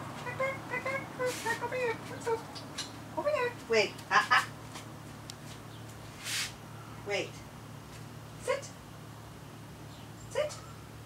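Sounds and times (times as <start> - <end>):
short hiss: 6.2 - 6.6.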